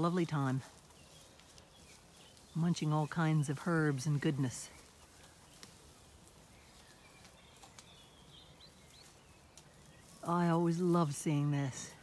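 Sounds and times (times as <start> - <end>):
faint bird chirps: 0.6 - 10.4.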